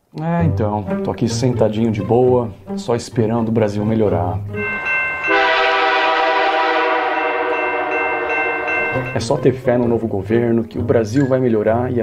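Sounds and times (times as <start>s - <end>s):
locomotive air horn blast: 5.2s - 9.0s.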